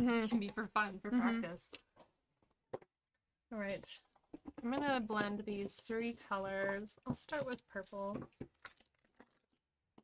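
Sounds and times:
craft supplies tapping and rustling: 3.9 - 8.7.

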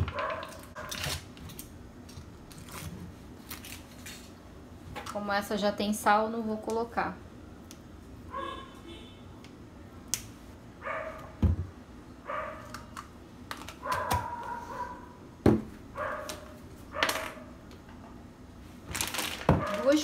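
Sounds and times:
dog barking: 0.1 - 0.9, 8.3 - 8.7, 10.8 - 11.4, 12.3 - 12.7, 13.8 - 15.2, 16.0 - 17.5, 19.6 - 19.9.

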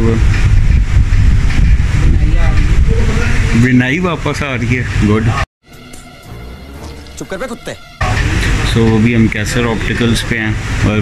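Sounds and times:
wind buffeting microphone: 0.0 - 5.4.

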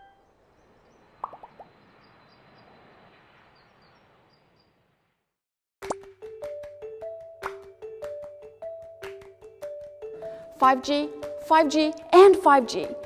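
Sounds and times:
quick pitched blips: 1.2 - 1.7
light music with plucked beat: 5.8 - 13.0.

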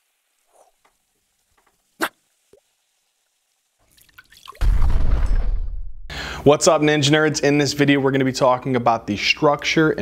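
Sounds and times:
water drip plink: 3.8 - 4.6
deep hit with low rumble: 4.6 - 6.1.

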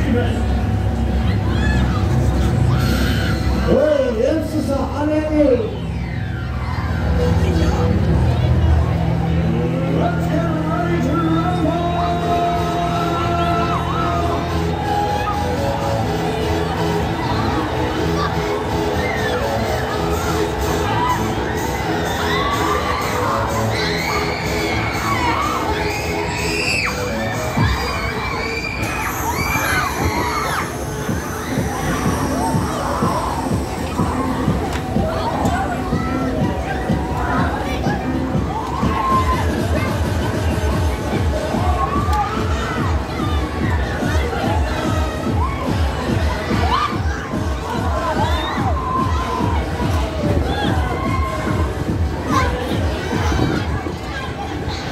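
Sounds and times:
riders screaming and shouting: 0.0 - 4.8, 5.4 - 8.0, 11.0 - 54.9
fairground ride music: 0.0 - 54.9.

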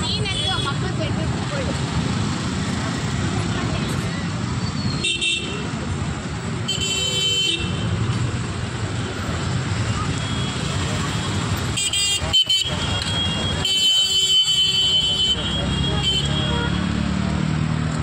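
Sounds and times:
vehicle engines rumbling: 0.0 - 18.0
vehicle horns honking: 4.8 - 5.8, 6.6 - 8.0, 11.6 - 17.0.

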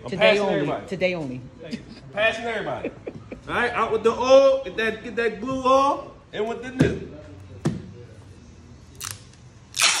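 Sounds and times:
tape ripping off roll: 9.0 - 10.0.

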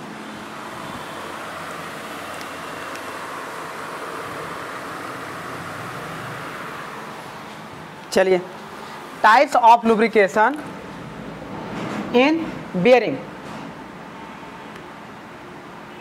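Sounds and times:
vehicle passing: 0.0 - 12.7.

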